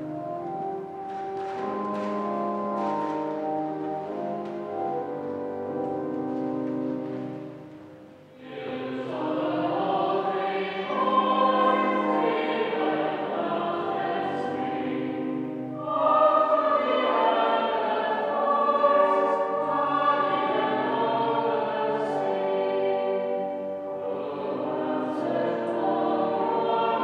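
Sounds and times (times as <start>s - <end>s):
choir singing sacred music: 0.0s - 27.0s.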